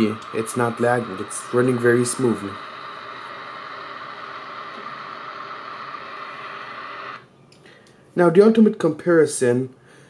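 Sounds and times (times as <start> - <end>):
rocket engine hissing rumble: 0.0 - 7.2.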